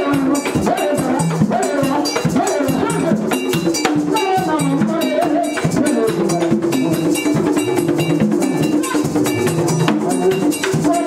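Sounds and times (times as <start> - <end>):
hand drums: 0.0 - 11.0
metal bell struck: 0.0 - 11.0.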